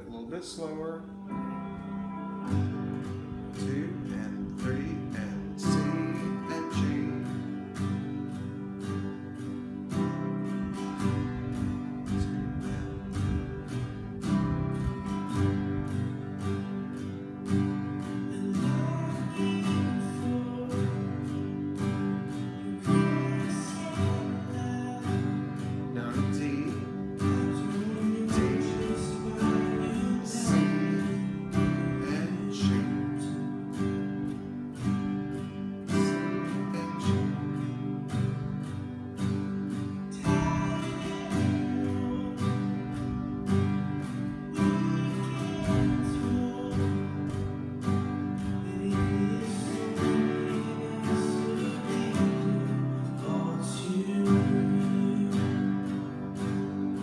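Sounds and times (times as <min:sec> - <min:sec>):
acoustic guitar strumming: 0:00.0 - 0:57.0.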